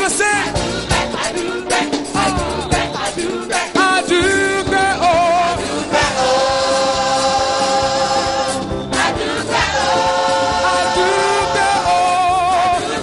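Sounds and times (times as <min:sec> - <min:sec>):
gospel choir singing: 0:00.0 - 0:13.0
rhythmic band accompaniment: 0:00.0 - 0:13.0.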